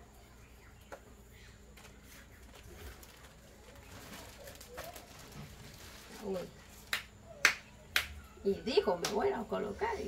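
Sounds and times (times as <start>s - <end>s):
plastic bag crinkling: 1.8s - 6.9s.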